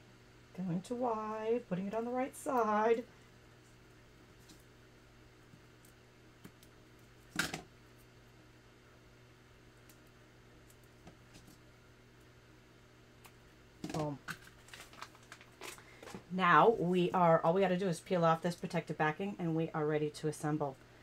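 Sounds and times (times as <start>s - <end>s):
paper rustle: 14.3s - 16.2s.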